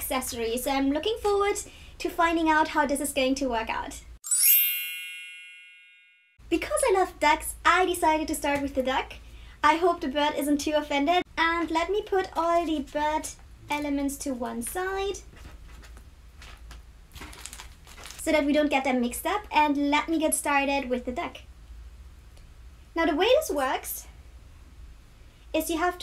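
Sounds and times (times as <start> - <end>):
bright chime ding: 4.2 - 6.4
soft rustle: 14.4 - 18.4
plastic packets handled on a mat: 15.3 - 18.2.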